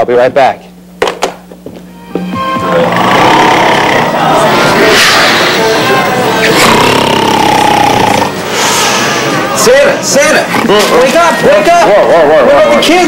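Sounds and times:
steady whine: 0:00.6 - 0:13.0.

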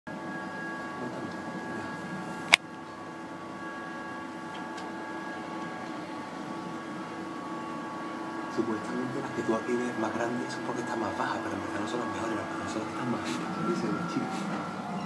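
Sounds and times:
steady mechanical hum: 0:00.1 - 0:15.0.

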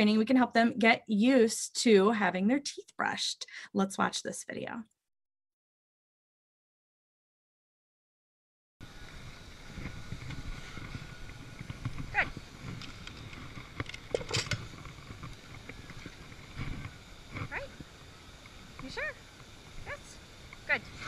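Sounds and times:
wind rumble on microphone: 0:08.8 - 0:21.0
microphone handling noise: 0:09.7 - 0:18.0.

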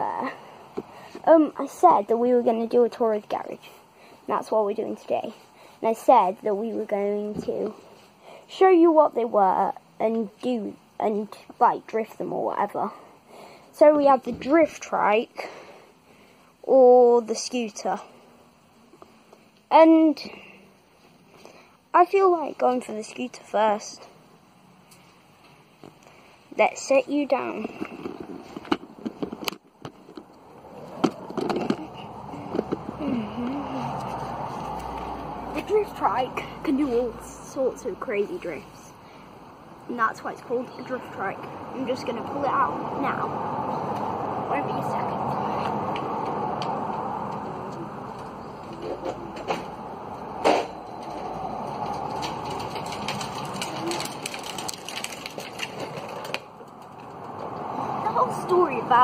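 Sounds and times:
steady outdoor hiss: 0:00.0 - 0:59.0
scooter wheels rumbling on tarmac: 0:26.7 - 0:38.6, 0:40.1 - 0:59.0
sharp clacks and knocks: 0:50.4 - 0:57.6
light rapid clicks and rattles: 0:50.9 - 0:57.6.

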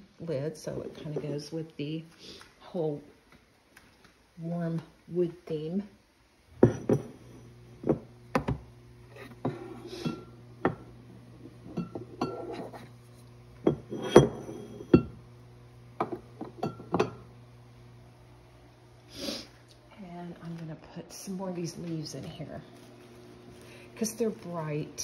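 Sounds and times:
low steady hum: 0:00.0 - 0:25.0
ceramic canister knocking on countertop: 0:06.6 - 0:07.1, 0:07.8 - 0:08.6, 0:16.0 - 0:17.2.

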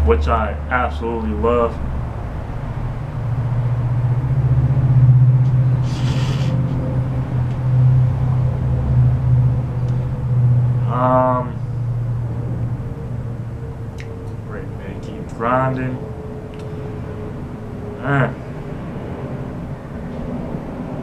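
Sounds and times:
steady low rumble: 0:00.0 - 0:21.0
short hiss: 0:05.8 - 0:06.6
hum-like voiced sound: 0:10.8 - 0:11.6, 0:18.0 - 0:18.4.

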